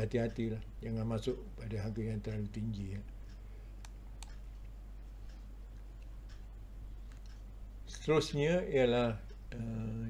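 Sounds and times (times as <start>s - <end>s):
steady low hum: 0.0s - 10.0s
computer mouse clicks: 3.8s - 7.5s.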